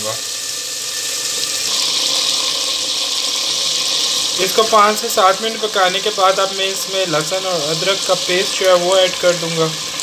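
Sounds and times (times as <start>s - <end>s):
chicken frying in oil: 0.0s - 10.0s.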